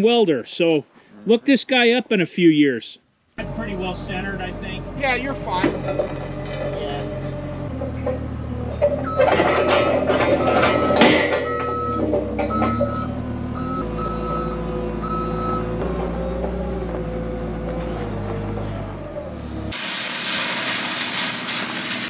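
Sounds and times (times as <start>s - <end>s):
forklift engine running: 3.4s - 22.0s
metal clanking and clatter: 5.5s - 12.9s
backup alarm beeping: 8.8s - 15.8s.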